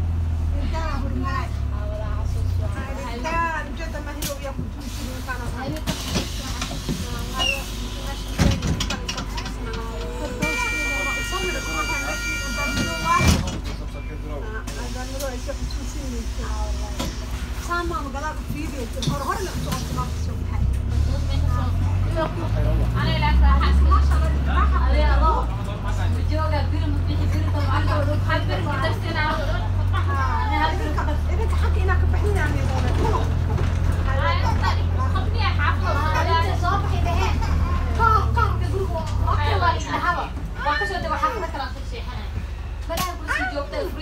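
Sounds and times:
bus engine humming low: 0:00.0 - 0:44.0
faint passenger voices: 0:00.3 - 0:44.0
bus doors shutting with thud: 0:04.1 - 0:15.9.

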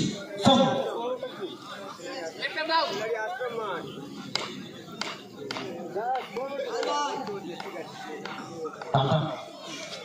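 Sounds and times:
men's voices chattering: 0:00.0 - 0:10.0.

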